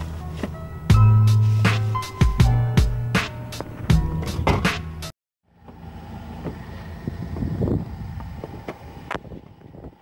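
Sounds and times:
wind on microphone: 7.0 - 10.0.

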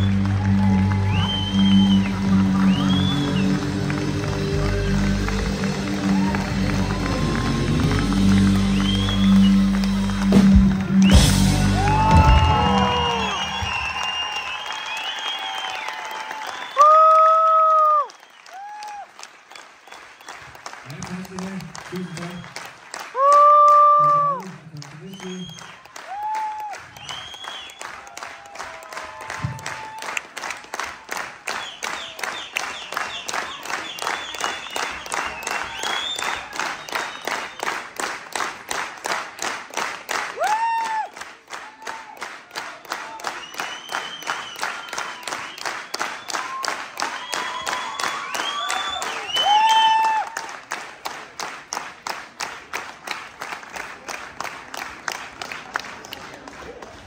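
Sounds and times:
audience clapping in rhythm: 0.0 - 57.0
crowd shouts: 11.3 - 18.0.

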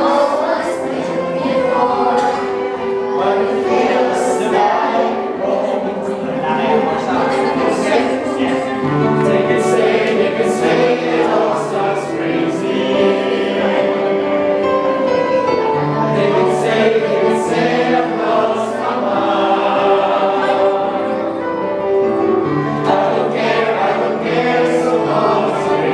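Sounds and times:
choir singing in harmony: 0.0 - 25.9.

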